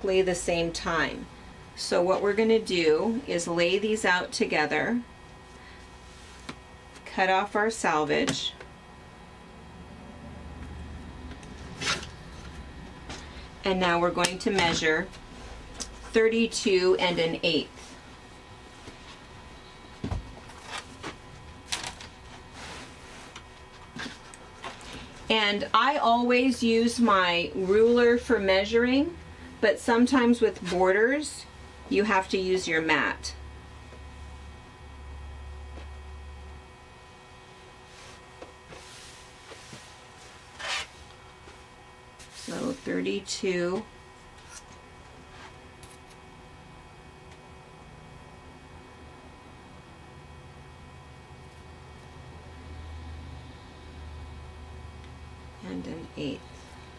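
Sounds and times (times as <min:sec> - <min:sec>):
cloth rubbing over mat: 0:22.4 - 0:24.2, 0:37.8 - 0:43.0.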